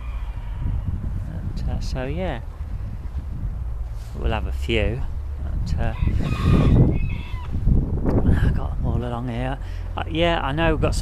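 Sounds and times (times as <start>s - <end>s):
low rumble on microphone: 0.0s - 11.0s.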